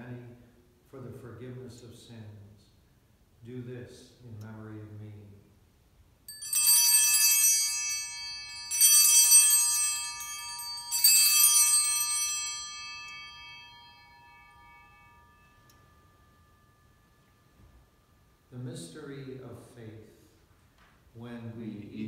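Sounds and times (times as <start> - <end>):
altar bells ringing: 6.3 - 19.3.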